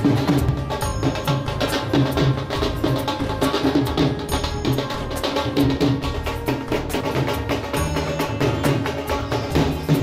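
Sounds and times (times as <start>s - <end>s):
dhol drums fast rhythm: 0.0s - 10.0s.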